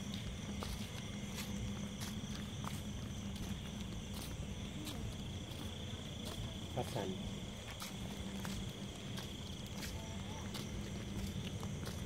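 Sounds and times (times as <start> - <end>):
crickets trilling: 0.0 - 12.0
footsteps on wet paving: 0.0 - 12.0.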